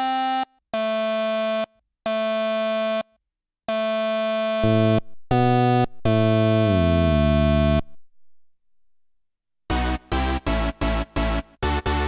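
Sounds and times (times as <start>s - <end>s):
buzzy synthesizer note: 4.6s - 8.4s.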